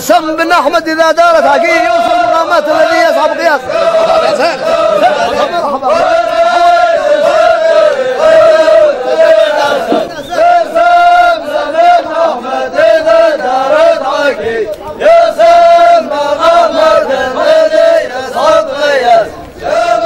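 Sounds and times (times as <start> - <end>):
men chanting in unison: 0.0 - 20.0.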